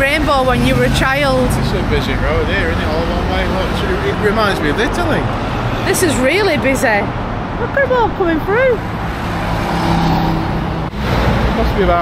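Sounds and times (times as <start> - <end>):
engine hum: 0.0 - 12.0
heavy road traffic: 0.0 - 12.0.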